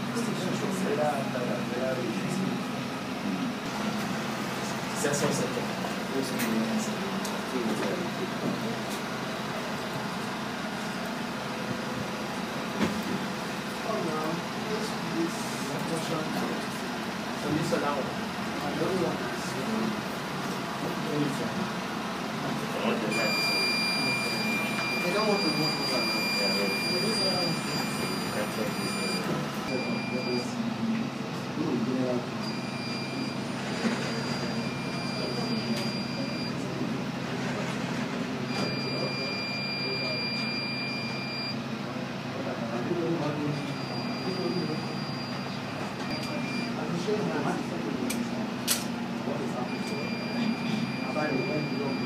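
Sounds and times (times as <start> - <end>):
indistinct talk: 13.6 - 52.0
high-pitched whine: 22.7 - 30.5
sharp click: 48.1 - 48.9.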